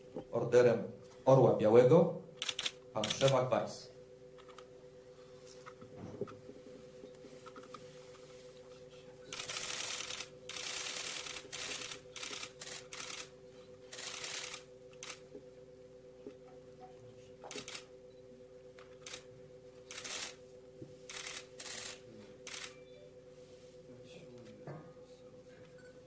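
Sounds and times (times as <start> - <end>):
faint steady hum: 0.0 - 26.0
camera shutters clicking: 2.4 - 3.4, 17.5 - 17.8, 21.1 - 22.8.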